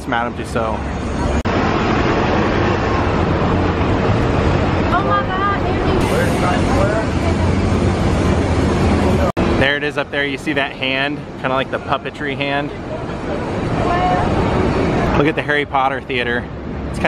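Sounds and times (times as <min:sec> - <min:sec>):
car and bus traffic: 0:00.0 - 0:17.0
voices of passers-by: 0:00.0 - 0:17.0.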